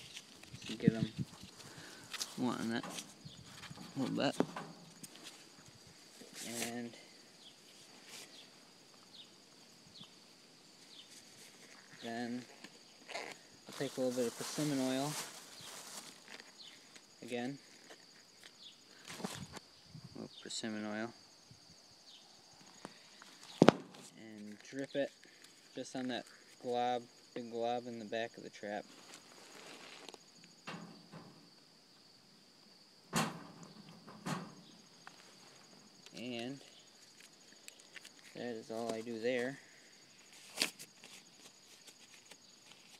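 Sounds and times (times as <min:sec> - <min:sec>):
crickets chirping: 0:00.0 - 0:42.9
knocks on wire cage: 0:04.4 - 0:04.9, 0:33.1 - 0:34.6.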